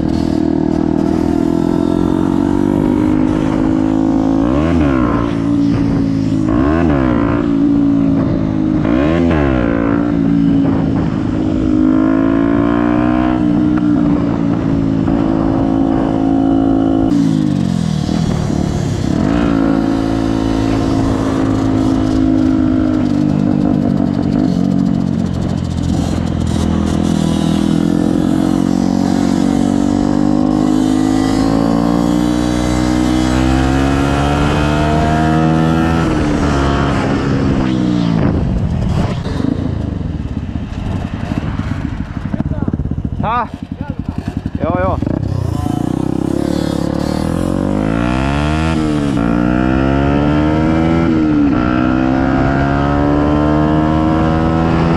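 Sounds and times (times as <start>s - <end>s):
motorcycle engine revving: 0.0s - 54.9s
wind rushing: 0.0s - 54.9s.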